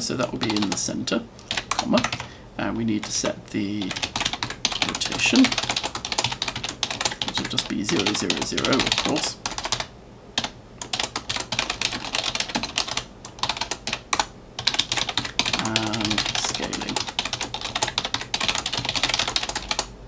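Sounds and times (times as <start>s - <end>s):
computer keyboard typing: 0.0s - 0.8s, 1.4s - 2.3s, 3.0s - 19.9s.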